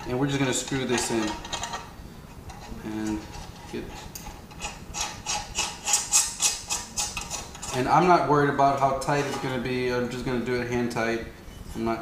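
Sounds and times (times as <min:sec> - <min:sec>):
bolt threads scraping: 0:00.3 - 0:09.8.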